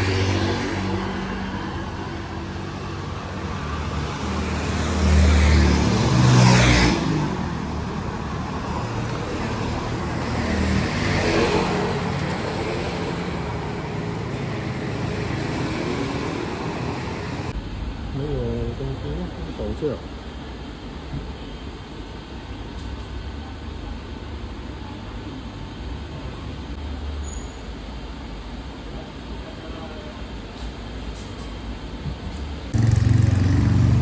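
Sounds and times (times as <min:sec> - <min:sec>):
loud vehicle passing: 0:00.0 - 0:17.6, 0:32.8 - 0:34.0
traffic hum: 0:00.0 - 0:24.6, 0:30.2 - 0:34.0.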